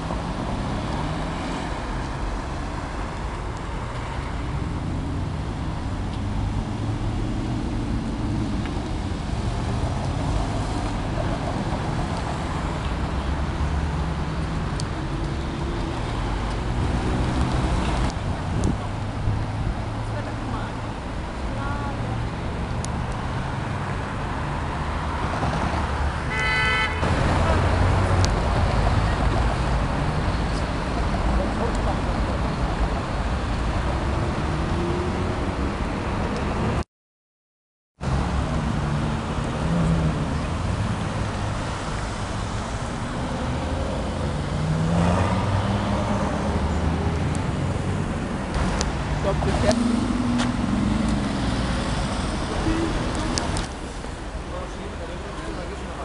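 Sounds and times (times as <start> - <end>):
car engines running: 0.0 - 26.3, 27.0 - 36.8, 38.0 - 56.0
city traffic rumble: 0.0 - 36.8, 38.0 - 56.0
car horn toot: 26.3 - 27.1.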